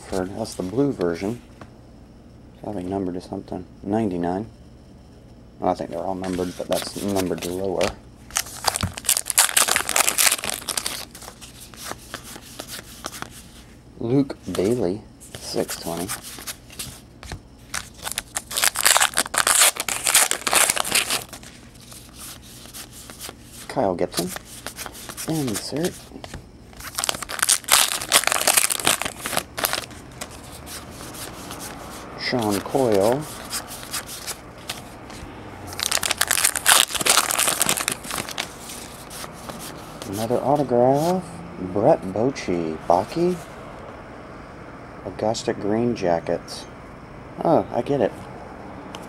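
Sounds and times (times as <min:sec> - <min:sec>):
cards being flipped through: 0:06.2 - 0:13.6, 0:14.5 - 0:41.1
crinkling rustle: 0:06.2 - 0:13.6, 0:15.3 - 0:40.7.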